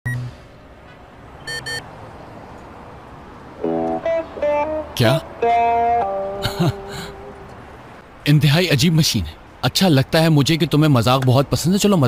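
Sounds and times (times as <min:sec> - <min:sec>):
keypad beeps: 0:01.4 - 0:01.8
music: 0:03.6 - 0:07.3.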